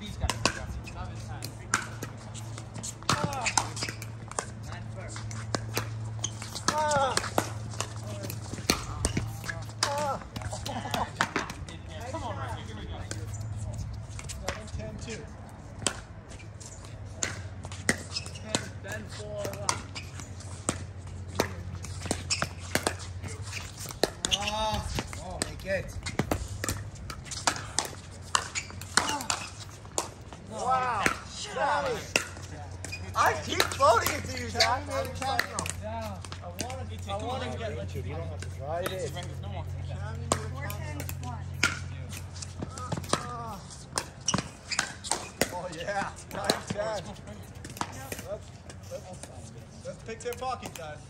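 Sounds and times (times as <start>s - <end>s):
players calling out: 0.8s - 14.4s, 16.3s - 26.4s, 27.2s - 50.7s.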